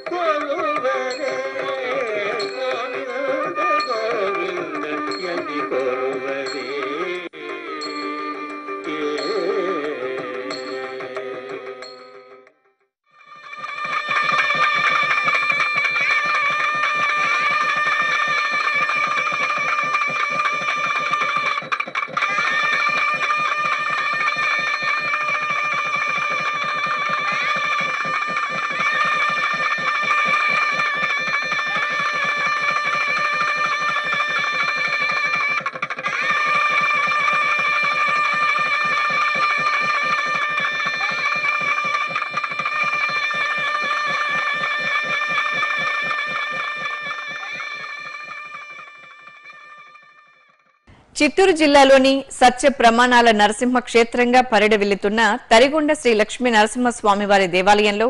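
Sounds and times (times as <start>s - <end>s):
hand bell rung rapidly: 0.0s - 7.0s, 13.4s - 49.8s.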